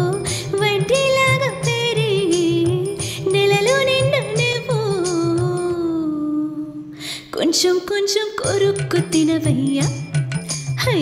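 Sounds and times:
rhythmic backing music: 0:00.0 - 0:05.8, 0:08.4 - 0:11.0.

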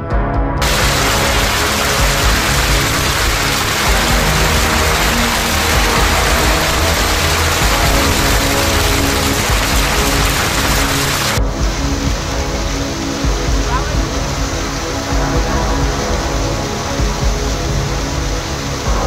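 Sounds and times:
low sustained background music: 0:00.0 - 0:19.0
hail and rain hitting ground: 0:00.6 - 0:11.4.

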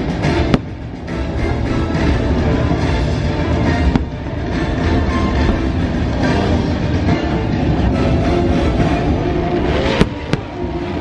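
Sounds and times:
fireworks bangs: 0:00.3 - 0:01.0, 0:09.7 - 0:10.8.

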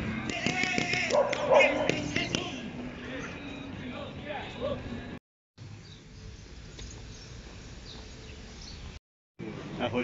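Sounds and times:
dog barking: 0:01.1 - 0:02.1.

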